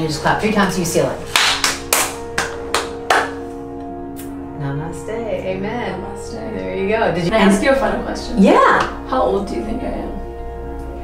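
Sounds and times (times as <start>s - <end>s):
soft background music: 0.0s - 11.0s
people clapping hands: 1.3s - 3.5s.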